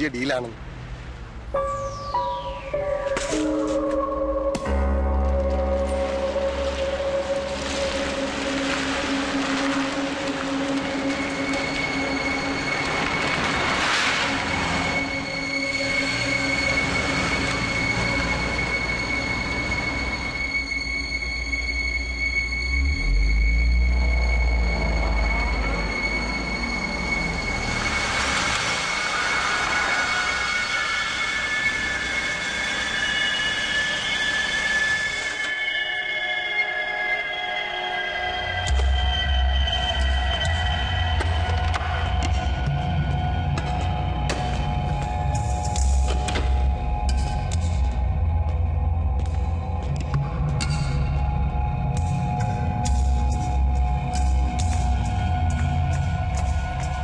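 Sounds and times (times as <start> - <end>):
train rumbling on tracks: 6.3 - 35.5
high-pitched wheel squeal: 11.0 - 44.2.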